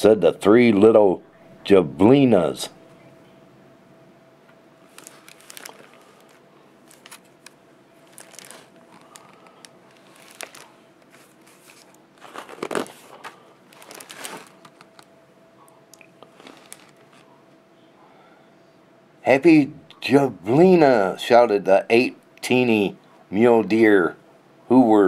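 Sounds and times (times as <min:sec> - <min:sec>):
book pages rustling: 0:04.9 - 0:15.1, 0:16.2 - 0:17.3.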